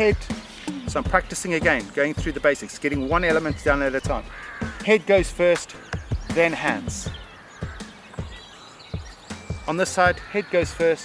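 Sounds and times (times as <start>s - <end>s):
soft low thumps: 0.0s - 8.4s
birds chirping faintly: 0.0s - 11.0s.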